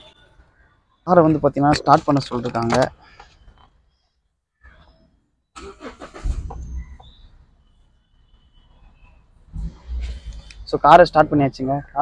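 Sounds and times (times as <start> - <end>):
car engine starting: 5.6 - 7.0.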